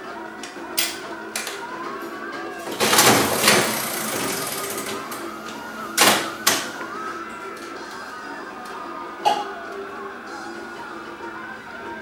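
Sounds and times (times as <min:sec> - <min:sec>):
slot machine reels whirring: 0:02.5 - 0:08.1
slot machine reels clunking: 0:02.6 - 0:07.0.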